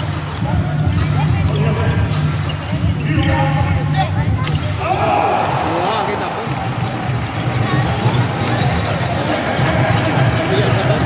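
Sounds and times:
arena music: 0:00.0 - 0:11.0
crowd voices: 0:00.0 - 0:11.0.

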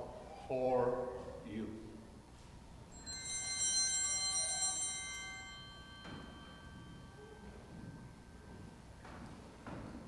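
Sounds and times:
small hand bells jingling: 0:02.9 - 0:08.5.

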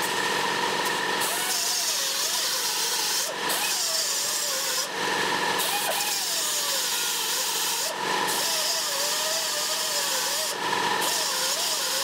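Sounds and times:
die grinder grinding steel: 0:00.0 - 0:12.0.

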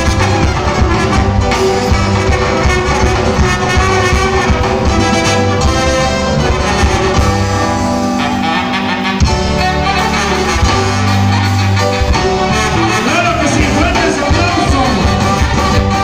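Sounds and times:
brass band music: 0:00.0 - 0:16.0.

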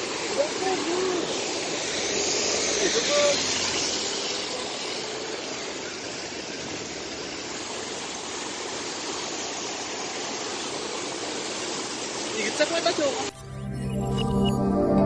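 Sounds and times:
floodwater rushing through channel: 0:00.0 - 0:13.3.

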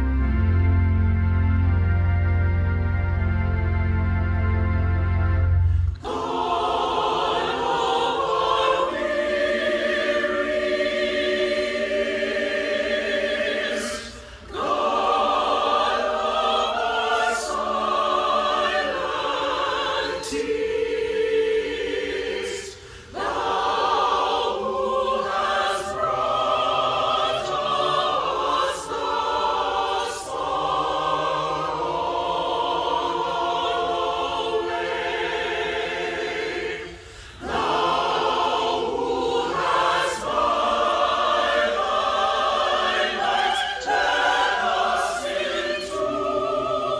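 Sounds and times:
choir singing a held chord: 0:05.4 - 0:46.9.

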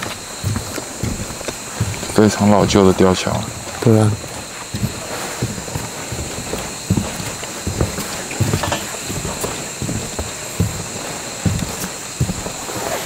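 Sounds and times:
footsteps on bridge deck: 0:00.0 - 0:13.0
steady high hiss: 0:00.0 - 0:13.0.

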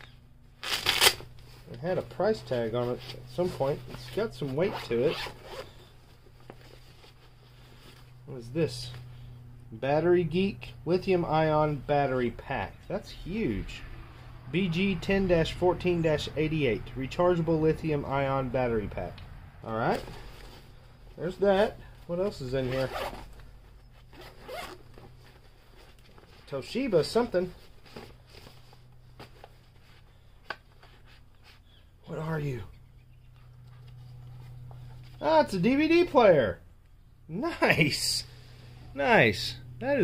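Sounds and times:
zipper being pulled open: 0:04.7 - 0:05.9, 0:22.6 - 0:23.4, 0:24.0 - 0:25.2.

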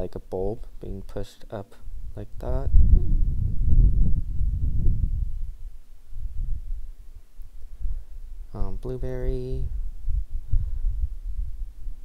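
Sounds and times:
wind buffeting on microphone: 0:01.9 - 0:12.0.

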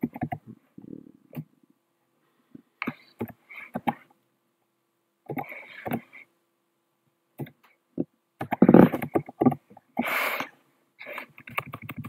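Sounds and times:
computer keyboard typing: 0:00.0 - 0:00.4, 0:08.4 - 0:09.6, 0:11.2 - 0:12.0.

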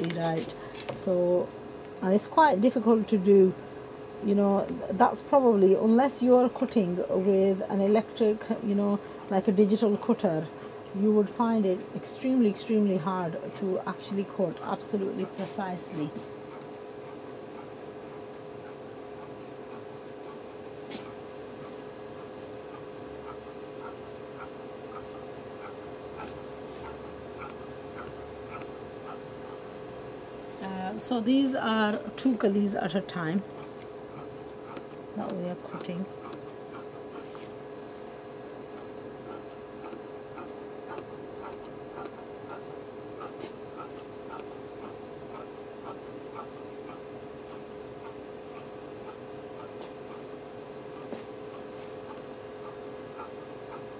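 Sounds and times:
faint steady hum: 0:00.0 - 0:53.9
scissors snipping fabric: 0:33.6 - 0:37.3.

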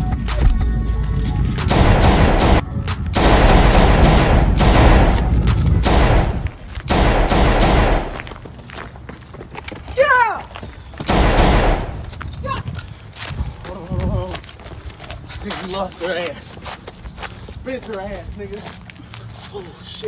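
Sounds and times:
rapid automatic gunfire: 0:01.7 - 0:02.6, 0:03.2 - 0:08.3, 0:11.1 - 0:12.0.

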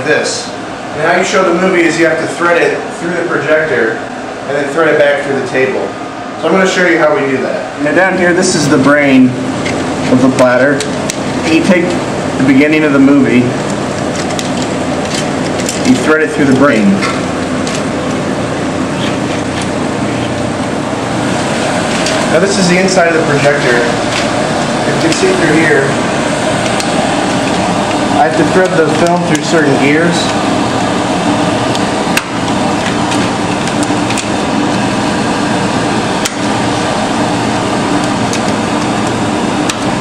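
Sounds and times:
fans and machinery rushing drone: 0:00.0 - 0:40.0
sharp clicks of projector guides: 0:09.6 - 0:12.0, 0:13.6 - 0:16.1, 0:17.0 - 0:17.9, 0:24.0 - 0:25.6, 0:26.5 - 0:29.6, 0:31.6 - 0:34.4, 0:36.2 - 0:36.5, 0:38.0 - 0:39.9.

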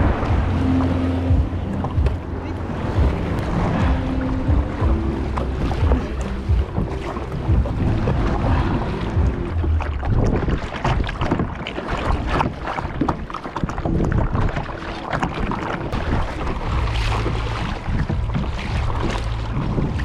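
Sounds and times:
low steady hum: 0:00.0 - 0:10.4
wind buffeting microphone: 0:00.0 - 0:20.0
crackles and knocks: 0:01.3 - 0:20.0.

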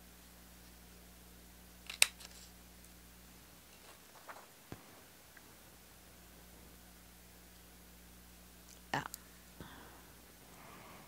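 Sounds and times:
paper punch snap: 0:01.8 - 0:02.3.

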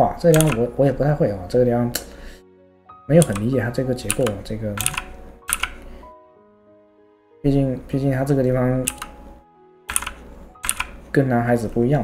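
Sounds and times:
faint background music: 0:00.0 - 0:12.0
keyboard key clicks: 0:00.3 - 0:00.7, 0:03.2 - 0:03.5, 0:04.1 - 0:05.9, 0:08.9 - 0:09.2, 0:09.9 - 0:11.0.

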